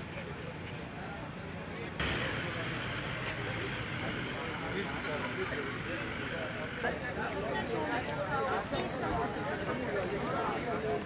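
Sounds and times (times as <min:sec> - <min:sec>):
people talking: 0:00.0 - 0:11.0
vehicle engine running: 0:02.0 - 0:07.8.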